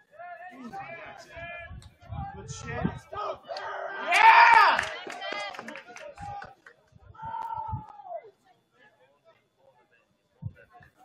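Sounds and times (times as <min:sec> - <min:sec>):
people shouting and calling out: 0:00.0 - 0:08.4.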